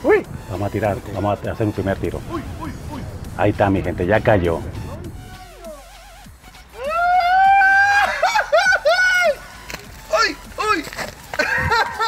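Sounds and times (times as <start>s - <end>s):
man shouting excitedly: 1.9s - 3.2s, 6.8s - 8.2s, 10.1s - 10.9s.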